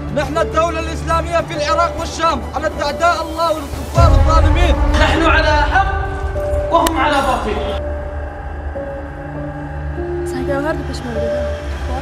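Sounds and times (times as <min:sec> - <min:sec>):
dark trailer music: 0:00.0 - 0:12.0
deep low drone: 0:04.0 - 0:12.0.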